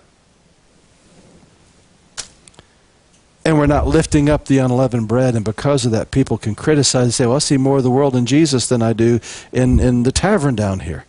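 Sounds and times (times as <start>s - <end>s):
sharp click: 2.2s - 3.3s.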